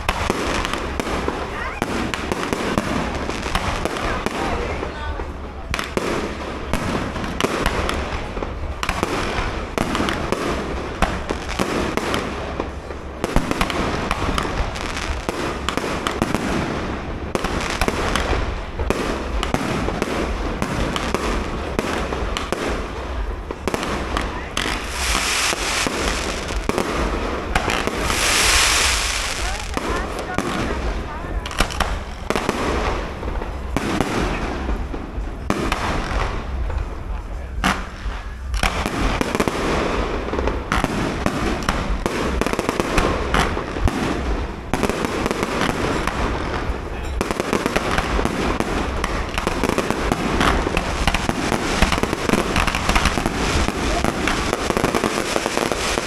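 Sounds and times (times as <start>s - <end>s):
hissing crackle of fireworks: 0.0s - 56.0s
firework shells bursting: 23.9s - 30.8s, 45.2s - 56.0s.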